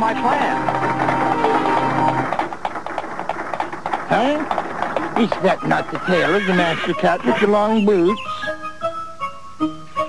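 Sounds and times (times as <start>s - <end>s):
horse hooves clip-clopping: 0.0s - 8.1s
background music: 0.0s - 10.0s.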